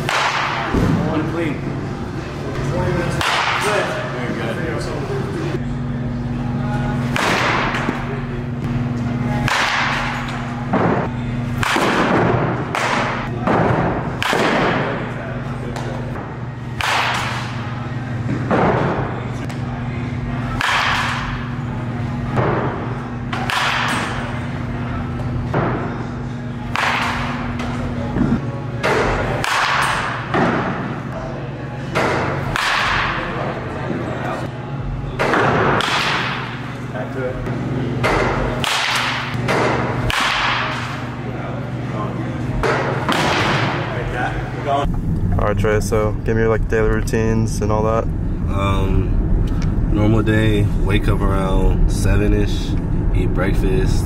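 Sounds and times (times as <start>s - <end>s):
baseball bats cracking balls: 9.3s - 19.6s, 38.0s - 41.1s.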